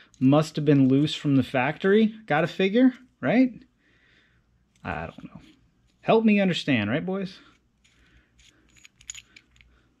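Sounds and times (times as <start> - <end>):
small metal clicks: 7.8 - 9.8.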